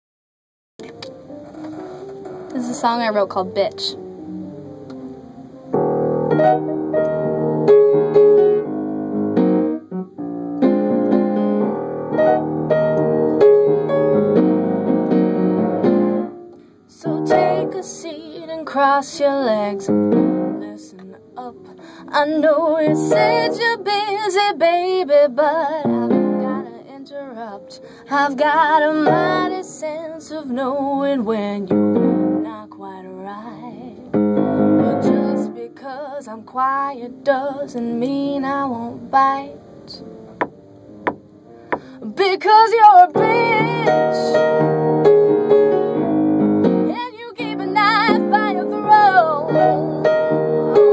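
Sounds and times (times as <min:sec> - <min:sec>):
piano chords ringing: 0:00.8 - 0:50.9
woman singing: 0:16.9 - 0:34.1, 0:34.7 - 0:40.1, 0:41.8 - 0:44.7, 0:46.9 - 0:50.9.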